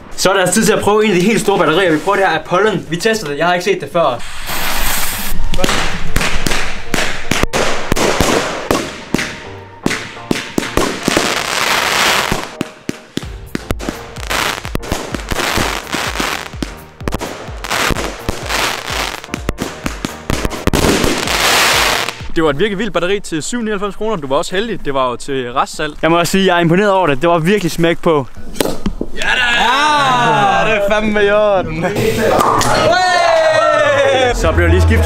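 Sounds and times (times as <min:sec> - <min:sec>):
firework launch shots and bursts: 0:04.3 - 0:22.3.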